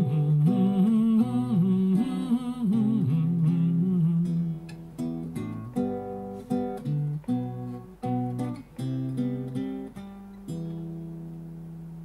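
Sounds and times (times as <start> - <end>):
man humming a melody: 0.0 - 5.5
acoustic guitar: 0.0 - 12.0.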